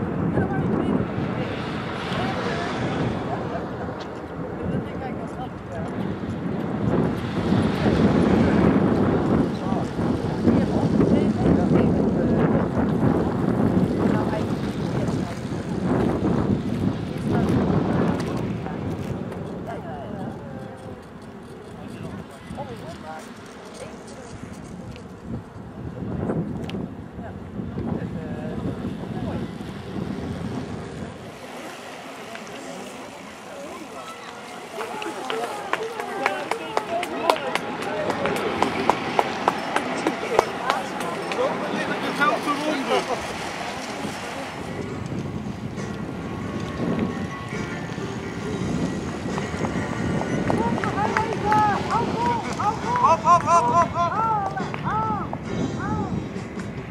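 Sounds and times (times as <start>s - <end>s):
indistinct chatter of voices: 0.0s - 56.9s
low wind rumble: 0.0s - 56.9s.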